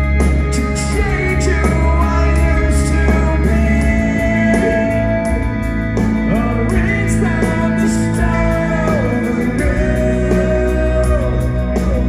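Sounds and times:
live rock band: 0.0s - 12.0s
singer singing: 0.0s - 12.0s.

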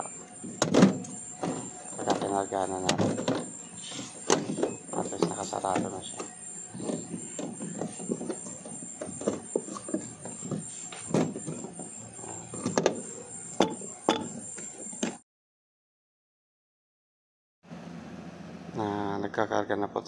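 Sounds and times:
knocks and clicks: 0.0s - 3.5s, 4.2s - 15.2s.

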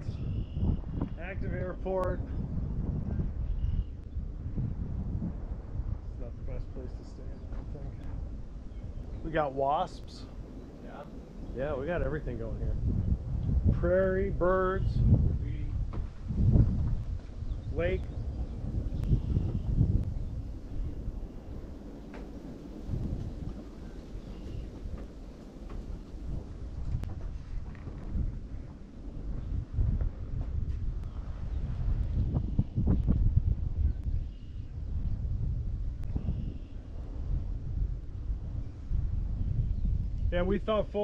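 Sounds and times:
faint bird chirps: 0.0s - 0.8s
wind buffeting microphone: 0.0s - 41.0s.

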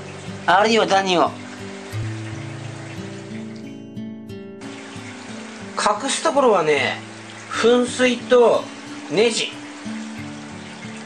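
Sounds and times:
soft music with low notes: 0.0s - 11.0s
trickling water hiss: 0.0s - 11.0s.

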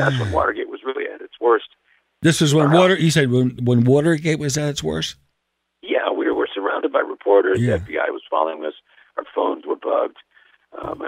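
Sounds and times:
voice over telephone line: 0.0s - 1.7s, 5.9s - 10.2s, 10.8s - 11.0s.

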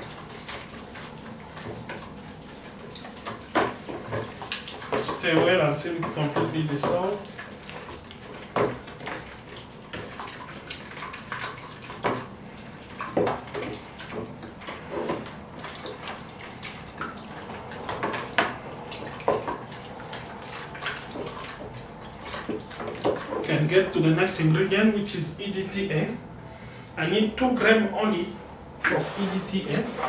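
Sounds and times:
liquid sloshing in plastic bucket: 0.0s - 26.4s, 27.3s - 30.0s
stick knocking on bucket: 3.4s - 7.2s, 8.5s - 9.2s.

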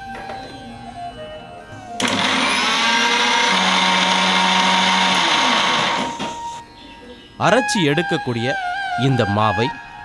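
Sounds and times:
mixer grinder motor whining: 2.0s - 6.6s.

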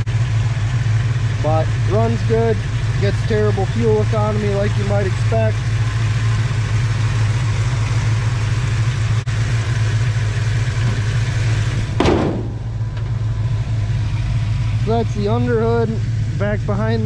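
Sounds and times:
engine idling: 0.0s - 17.0s.

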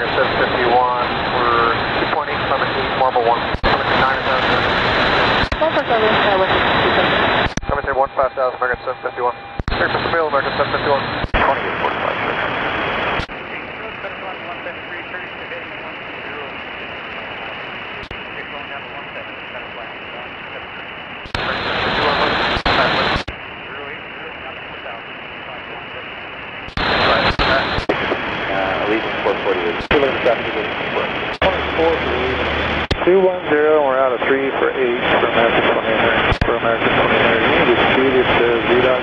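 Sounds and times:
garbled radio voice: 0.0s - 12.6s, 13.2s - 26.1s, 26.7s - 39.0s
radio burst: 0.0s - 39.0s
radio static hiss: 0.0s - 39.0s.

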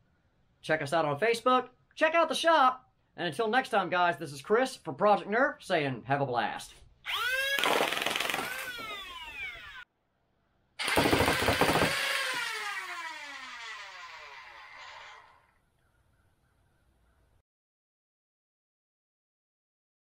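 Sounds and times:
electric motors revving and whining: 7.1s - 9.8s, 10.8s - 15.5s.

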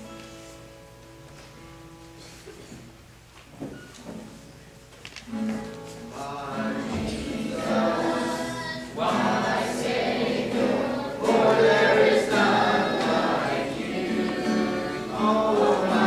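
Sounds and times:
choir singing a worship song: 6.2s - 16.0s.

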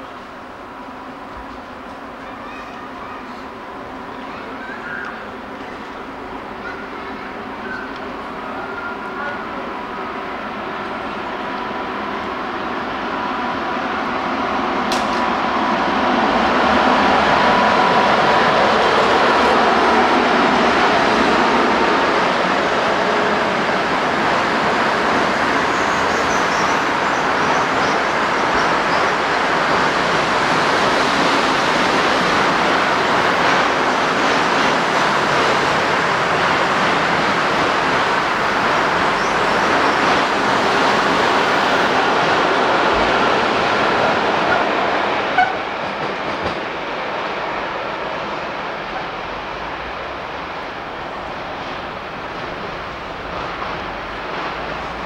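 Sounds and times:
train wheels rumbling and clacking: 0.0s - 55.0s.

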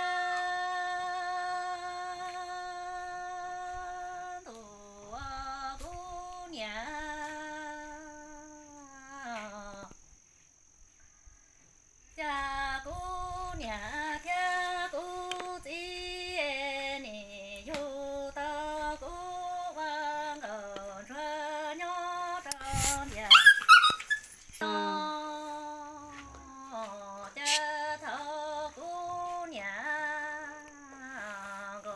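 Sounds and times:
woman singing unaccompanied: 0.0s - 10.1s, 12.1s - 31.9s
high animal cries: 23.2s - 24.4s.

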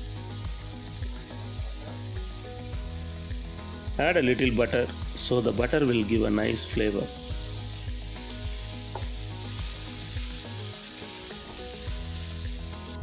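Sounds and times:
background music: 0.0s - 13.0s
rice sizzling in a pan: 0.0s - 13.0s.

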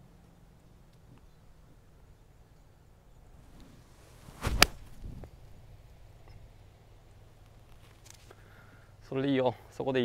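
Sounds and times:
golf club swish: 3.3s - 5.4s
club striking golf ball: 4.2s - 5.1s.

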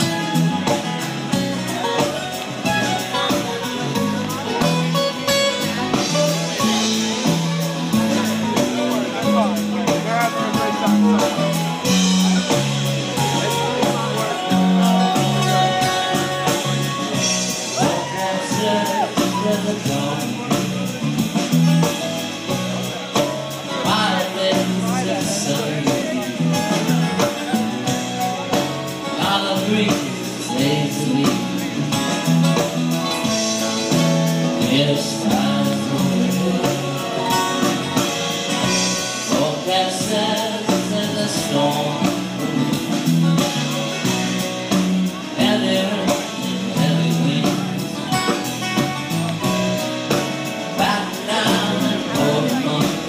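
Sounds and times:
electric guitar: 0.0s - 53.0s
live band playing: 0.0s - 53.0s
strummed acoustic guitar: 0.0s - 53.0s.

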